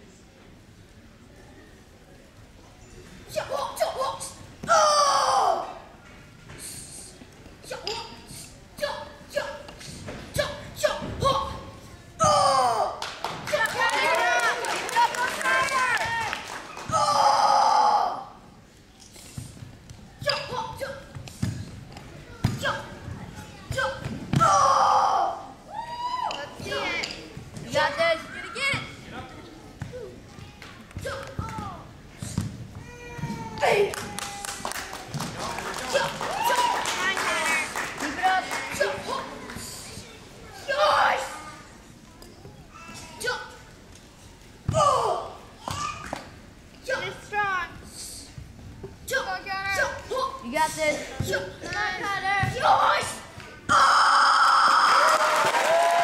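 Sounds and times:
boy's high kiai shout: 3.3 - 5.8, 12.2 - 18.4, 23.7 - 27.0, 32.9 - 34.6, 44.7 - 46.1, 52.5 - 55.4
audience applause and cheering: 33.9 - 38.7, 54.4 - 56.0
crowd whooping: 36.1 - 37.2.

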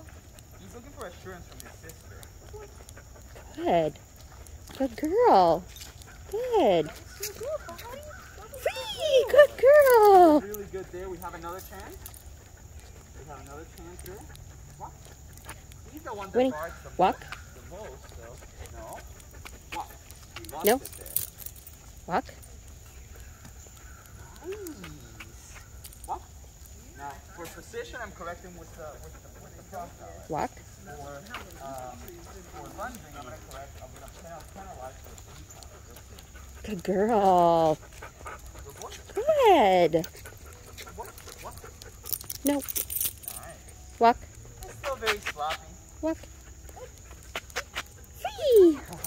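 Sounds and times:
footsteps on pavement: 0.0 - 49.0
light clicks of collar and leash: 0.0 - 49.0.

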